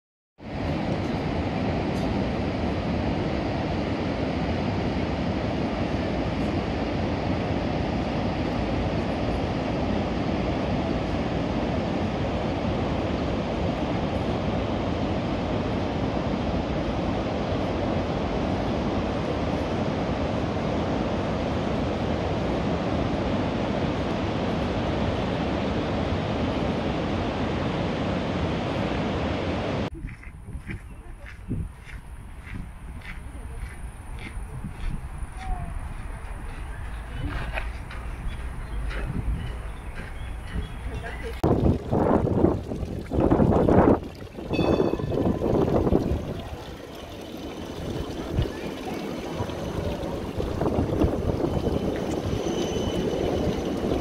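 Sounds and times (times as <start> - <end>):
river water rushing over weir: 41.4 - 54.0.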